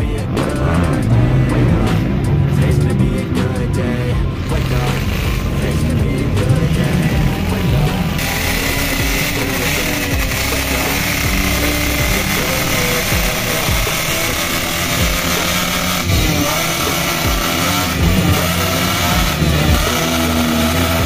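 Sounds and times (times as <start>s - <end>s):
dirt bike engines revving: 0.0s - 21.0s.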